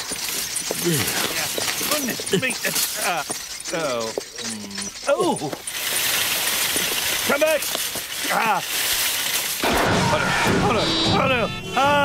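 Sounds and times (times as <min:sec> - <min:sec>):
steady rattling noise: 0:00.0 - 0:09.6.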